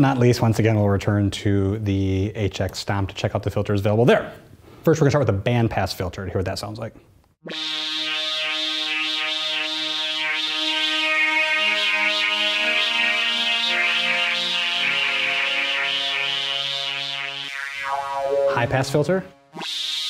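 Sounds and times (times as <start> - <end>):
filtered synthesizer chords: 7.4 - 20.0.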